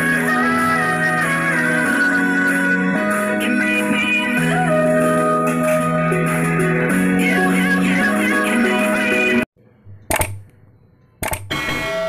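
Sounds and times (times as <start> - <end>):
double mouse click: 10.0 - 10.6, 11.2 - 11.5.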